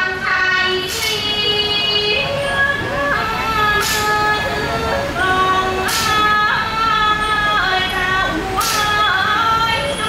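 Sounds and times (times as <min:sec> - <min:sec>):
reedy wind instrument: 0:00.9 - 0:10.0.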